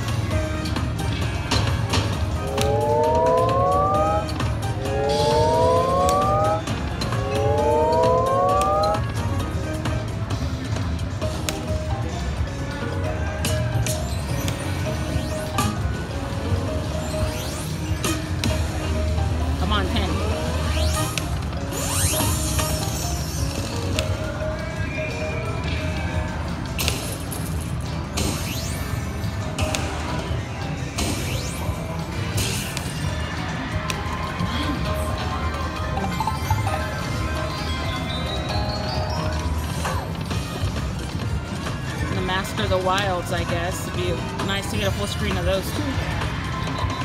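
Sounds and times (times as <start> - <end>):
casino background noise: 0.0 - 47.0
game music: 0.0 - 47.0
rising electronic tones: 2.3 - 9.1, 34.4 - 40.6.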